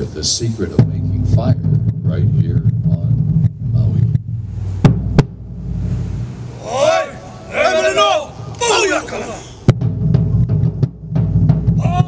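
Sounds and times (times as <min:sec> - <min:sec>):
low rumble: 0:00.7 - 0:07.5
person calling out: 0:06.6 - 0:09.6, 0:11.8 - 0:12.0.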